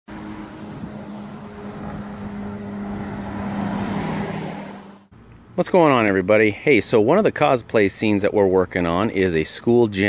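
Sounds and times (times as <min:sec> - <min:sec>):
engine humming: 0:00.1 - 0:05.6.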